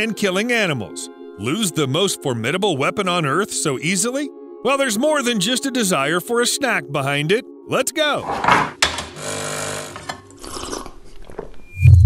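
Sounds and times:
coffee machine buzzing: 8.9 - 10.2.

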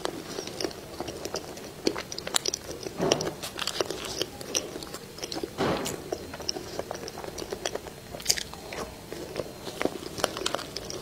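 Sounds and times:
crunchy chewing: 0.0 - 11.0.

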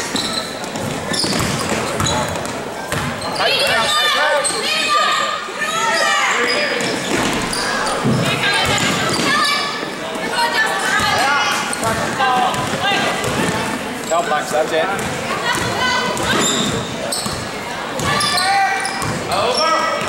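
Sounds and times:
basketball bouncing on wooden floor: 0.7 - 3.1.

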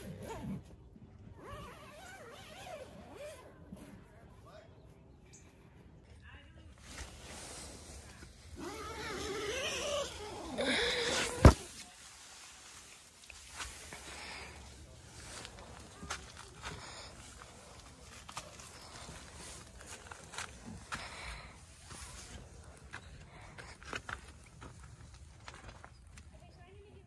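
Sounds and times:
faint distant voices: 0.0 - 27.0.

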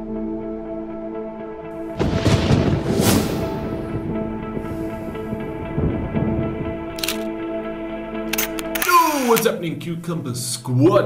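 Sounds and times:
noisy swish: 2.7 - 5.3
camera shutter click: 7.0 - 7.3, 8.3 - 9.5
man's voice sliding down in pitch: 8.8 - 9.5.

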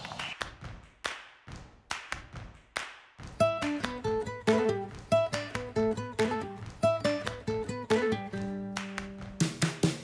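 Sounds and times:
sharp percussive taps: 0.0 - 10.0.

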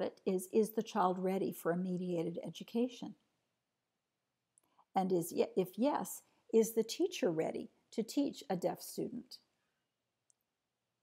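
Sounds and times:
person speaking: 5.0 - 9.4.

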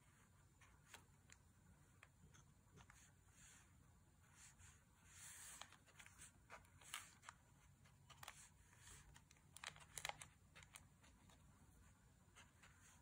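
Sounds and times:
brush strokes on paper: 2.9 - 6.4.

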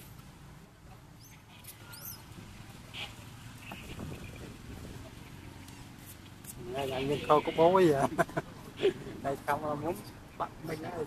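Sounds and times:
high-pitched animal squeaks: 1.2 - 2.3.

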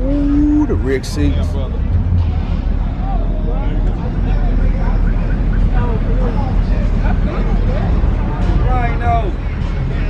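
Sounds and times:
faint voices talking: 0.0 - 10.0
loud steady low rumble: 0.0 - 10.0.

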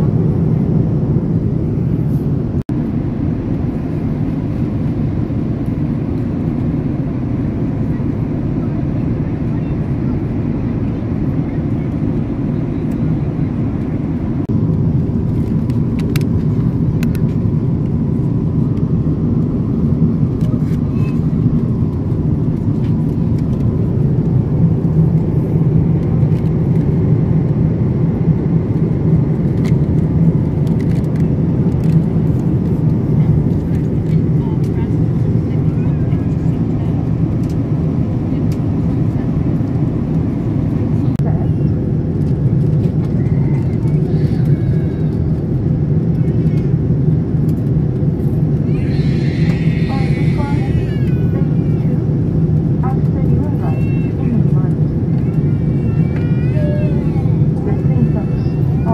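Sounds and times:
jet airliner cabin rumble: 0.0 - 58.9.

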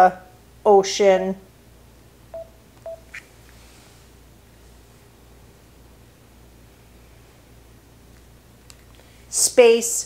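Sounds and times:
low room hum: 0.0 - 10.0
short electronic beeps: 2.4 - 3.1.

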